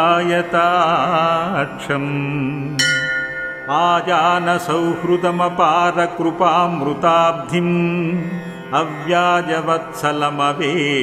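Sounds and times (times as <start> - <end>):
bell ringing: 2.8 - 5.0
man chanting melodically: 3.7 - 11.0.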